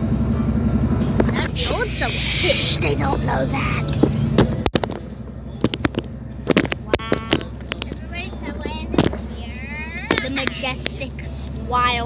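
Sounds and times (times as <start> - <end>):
moving car rumble: 0.0 - 12.0.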